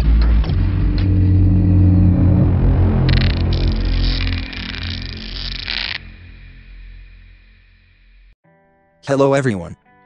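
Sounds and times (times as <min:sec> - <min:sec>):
deep rumbling drone: 0:00.0 - 0:08.4.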